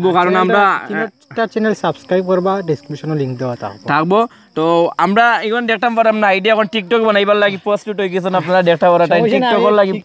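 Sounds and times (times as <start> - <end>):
high-pitched insect drone: 0.0 - 10.0
man talking: 0.0 - 10.0.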